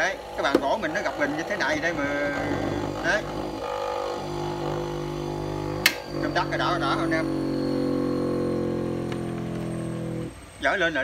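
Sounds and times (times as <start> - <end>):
bench grinder humming: 0.0 - 11.0.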